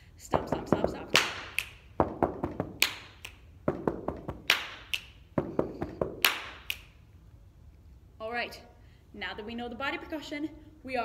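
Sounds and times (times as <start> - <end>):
hand clap: 1.1 - 6.9
finger snap: 1.2 - 1.8, 2.8 - 3.5, 4.5 - 5.2, 6.2 - 7.0.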